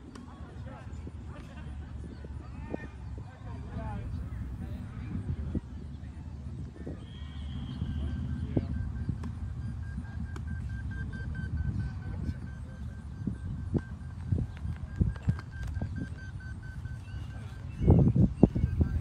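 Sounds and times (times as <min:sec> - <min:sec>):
short high-pitched beeps: 0:06.9 - 0:19.0.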